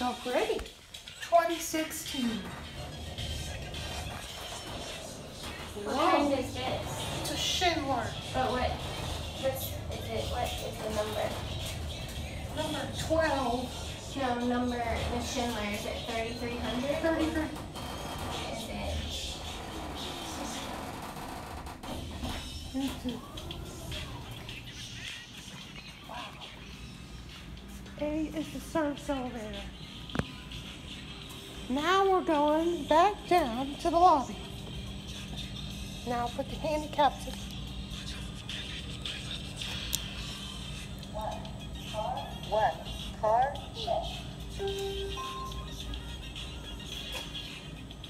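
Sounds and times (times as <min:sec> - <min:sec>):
elevator humming: 0:00.0 - 0:48.0
faint background music: 0:00.0 - 0:48.0.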